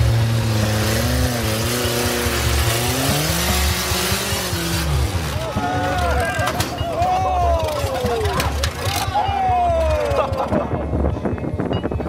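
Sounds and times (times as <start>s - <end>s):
buggy engine running low: 0.0s - 12.0s.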